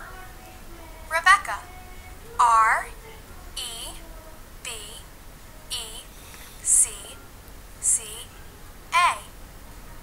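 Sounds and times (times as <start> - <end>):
recorded voice spelling: 1.0 - 1.8, 3.6 - 5.1, 5.7 - 7.2, 7.8 - 8.3, 8.9 - 9.3.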